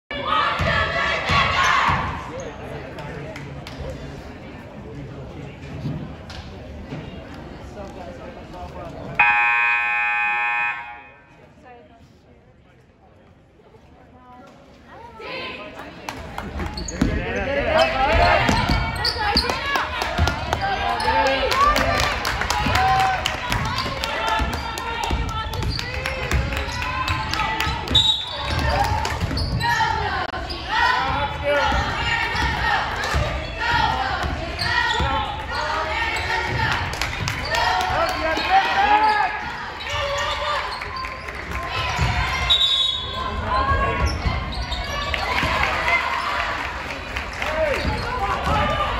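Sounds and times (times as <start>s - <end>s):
crowd and player chatter: 0.1s - 48.9s
scoreboard buzzer: 9.2s - 11.2s.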